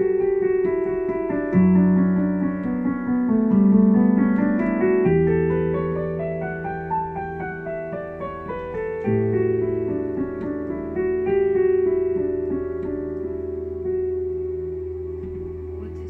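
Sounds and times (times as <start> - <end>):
slow meditative piano: 0.0 - 16.0.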